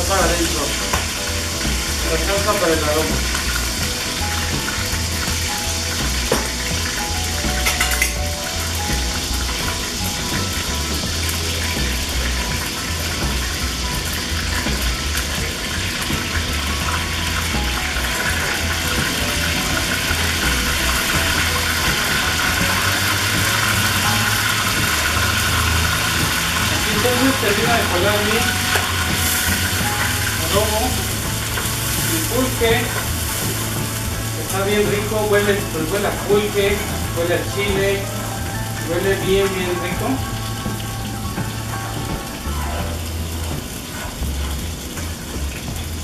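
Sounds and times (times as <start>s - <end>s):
sauce sizzling in hot oil: 0.0s - 46.0s.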